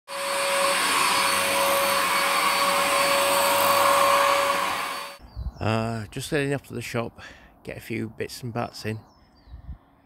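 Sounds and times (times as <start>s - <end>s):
vacuum cleaner running on carpet: 0.1s - 5.2s.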